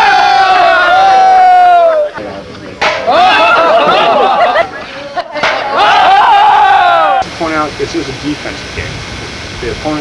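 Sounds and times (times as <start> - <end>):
men yelling: 0.0 - 2.2, 2.8 - 4.8, 5.4 - 7.2.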